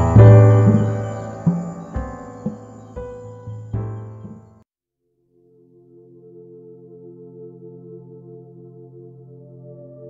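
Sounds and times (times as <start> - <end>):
steady high shimmer: 0.0 - 3.6
held low tone: 0.0 - 4.4
soft piano-like keyboard notes: 0.0 - 4.6.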